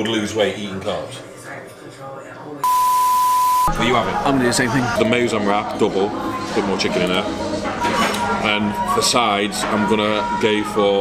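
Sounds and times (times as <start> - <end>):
high electronic beep: 2.6 - 3.8.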